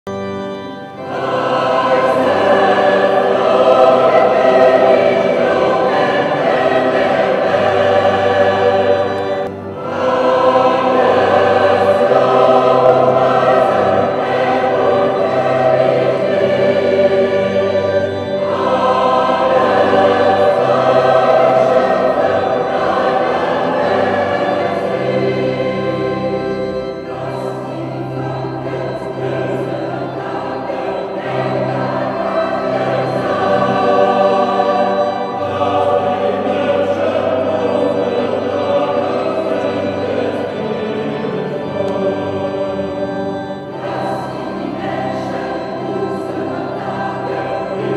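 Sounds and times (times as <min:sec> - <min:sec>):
mixed choir singing: 0:00.2 - 0:47.9.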